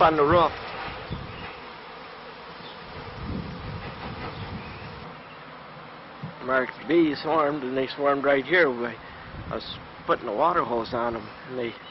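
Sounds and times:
bee swarm buzzing: 0.0s - 11.9s.

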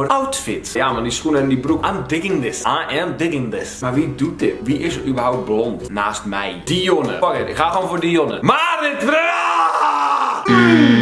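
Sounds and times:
man groaning wail: 9.2s - 11.0s.

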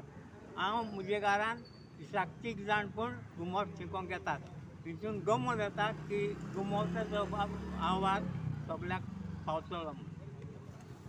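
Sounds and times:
man speaking: 0.6s - 10.2s
passing motor vehicle hum: 2.5s - 11.0s.

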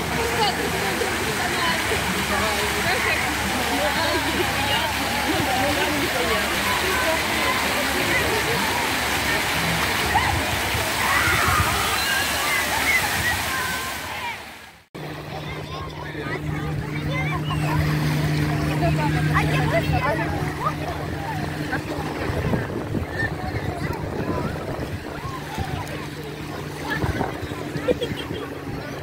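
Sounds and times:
crowd chatter: 0.0s - 29.0s
fountain jets splashing: 0.0s - 29.0s
people's voices: 0.0s - 29.0s
steady low hum: 15.0s - 29.0s.

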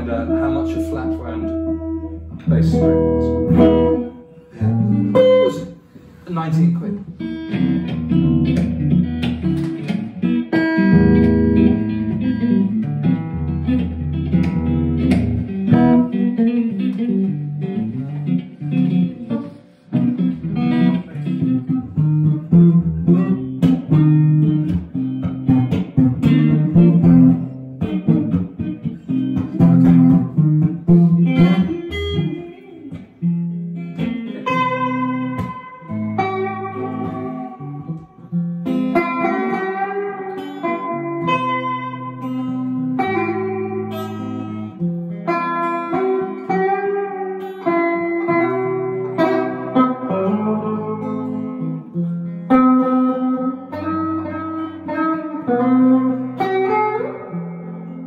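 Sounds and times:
electric guitar duet: 0.0s - 58.0s.

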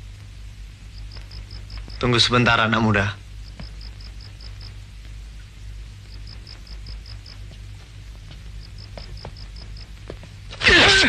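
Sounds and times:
steady low hum: 0.0s - 11.0s
person crying out: 10.6s - 11.0s
sudden loud outburst: 10.6s - 11.0s.

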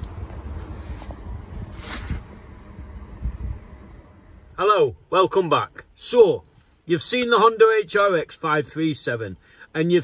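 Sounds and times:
brief rustle: 0.0s - 2.4s
wind rumbling on microphone: 0.0s - 4.6s.

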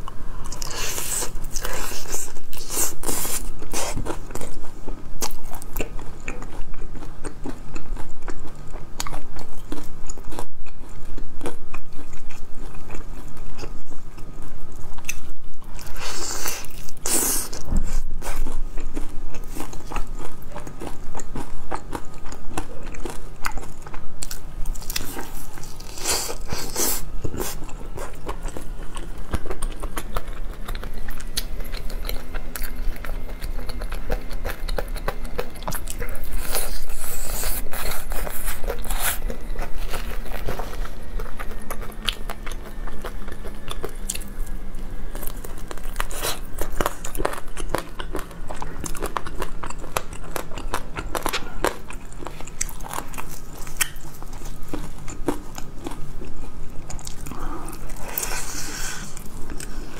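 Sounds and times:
chewing crispy fried chicken: 0.0s - 59.9s.

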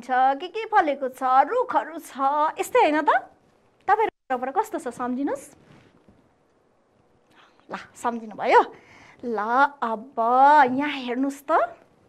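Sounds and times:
woman speaking: 0.0s - 5.6s, 7.6s - 11.9s.

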